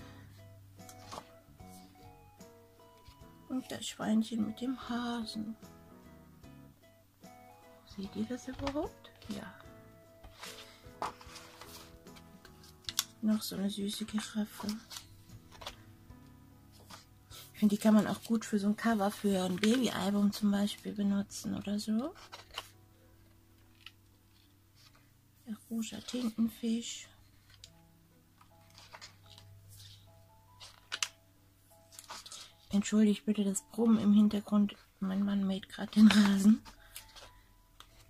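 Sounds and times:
soft background music: 0.0s - 38.0s
paper rustling: 0.8s - 1.9s, 10.2s - 15.9s, 16.7s - 20.9s, 22.0s - 22.8s, 25.8s - 26.6s, 28.4s - 31.2s, 31.8s - 32.8s, 34.7s - 38.0s
paper clicks: 30.6s - 31.2s.

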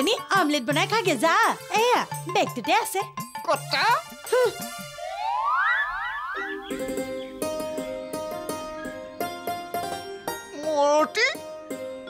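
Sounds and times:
rising whooping glides: 4.9s - 7.5s.

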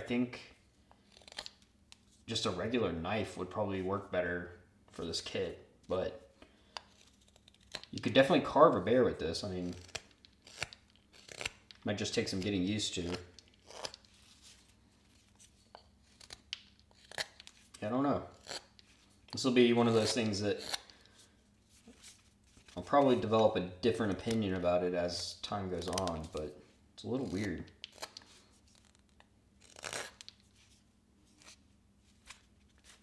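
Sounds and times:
knife scraping cut in wood: 9.6s - 14.1s, 15.4s - 17.6s, 18.3s - 18.9s, 19.8s - 20.9s, 29.6s - 30.4s
knife slicing wood: 19.8s - 20.9s.

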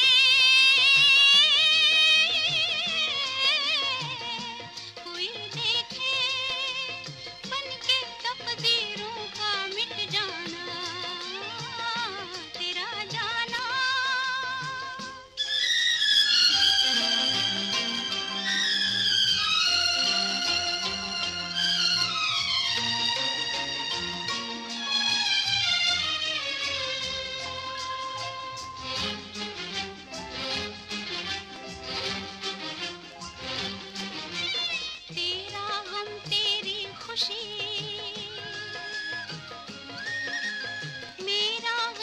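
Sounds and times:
film song from vinyl record: 0.0s - 42.0s
violins sliding downward: 15.4s - 26.8s.

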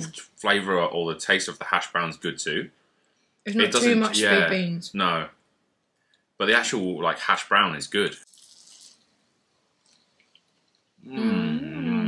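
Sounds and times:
spoken word: 0.0s - 2.7s, 3.5s - 5.3s, 6.4s - 8.2s, 11.1s - 12.0s
soft hiss: 0.0s - 12.0s.

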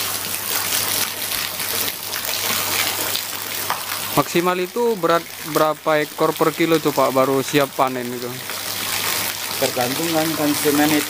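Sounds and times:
running water rushing: 0.0s - 11.0s.

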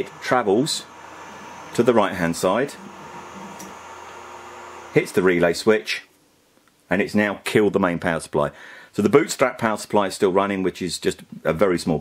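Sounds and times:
faint steady tones: 0.0s - 5.4s
printer fans whirring: 0.0s - 5.4s.

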